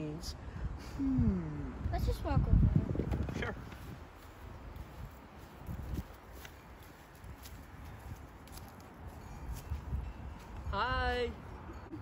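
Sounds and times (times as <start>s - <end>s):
footsteps on grass and dry leaves: 3.5s - 10.7s.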